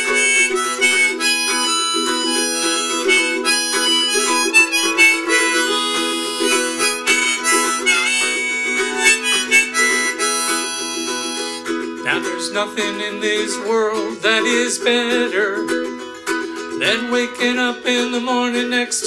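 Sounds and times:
harmonica melody: 0:00.0 - 0:19.0
strummed ukulele chords: 0:00.0 - 0:19.0.

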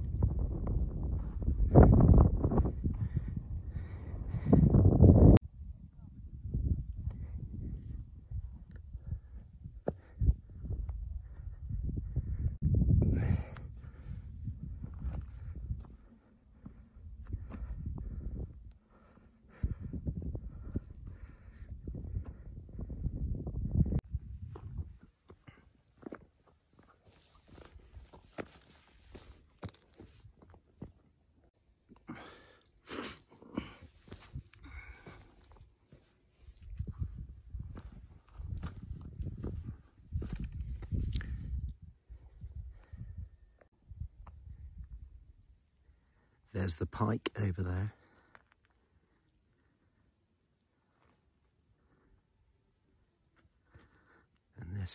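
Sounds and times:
wind buffeting microphone: 0:00.0 - 0:18.8, 0:19.4 - 0:25.1, 0:36.5 - 0:45.5
footsteps on stony ground: 0:14.8 - 0:18.8, 0:24.4 - 0:31.1, 0:33.6 - 0:41.4.

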